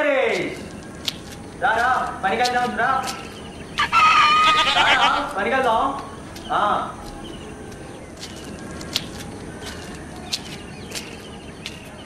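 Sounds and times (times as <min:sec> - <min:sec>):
outdoor background noise: 0:00.0 - 0:12.0
high bird chirps: 0:03.0 - 0:12.0.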